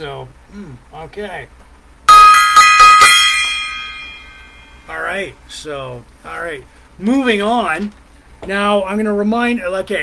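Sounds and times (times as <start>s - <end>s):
small brass gong ringing: 2.1s - 4.9s.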